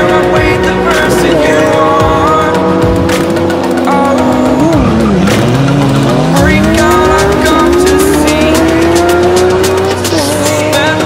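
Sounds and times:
background music: 0:00.0 - 0:11.0
cars accelerating hard: 0:00.0 - 0:11.0.

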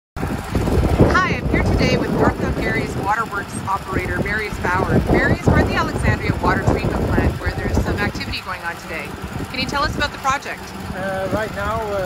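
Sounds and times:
machinery engine rumble: 0:00.2 - 0:12.0.

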